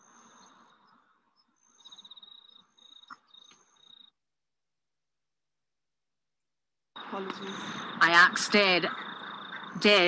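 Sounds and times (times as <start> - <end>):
high-pitched wildlife chirps: 0.0 - 4.2, 7.0 - 10.0.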